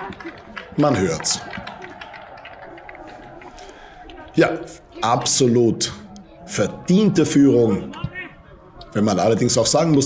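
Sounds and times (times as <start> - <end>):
distant voices of players calling: 5.9 - 9.7.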